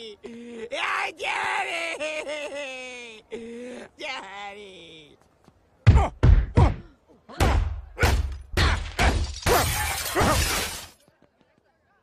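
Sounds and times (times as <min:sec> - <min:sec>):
cartoon crashes and smashing: 0:07.4 - 0:11.0.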